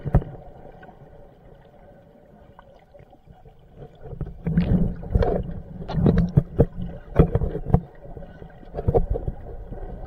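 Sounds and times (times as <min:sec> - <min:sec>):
muffled underwater rumbling: 0:00.0 - 0:10.0.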